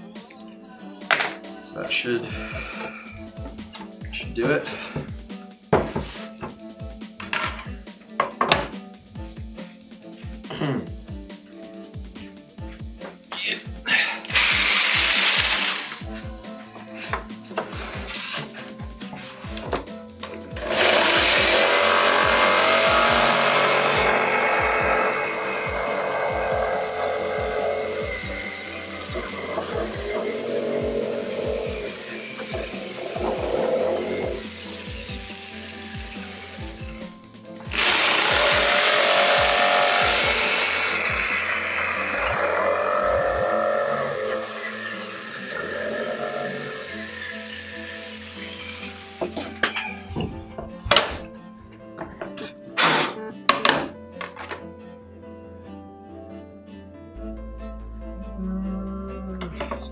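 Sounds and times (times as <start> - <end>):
background music: 0.0 - 59.9
power tool motor running: 14.3 - 16.2, 20.5 - 37.0, 37.7 - 49.3.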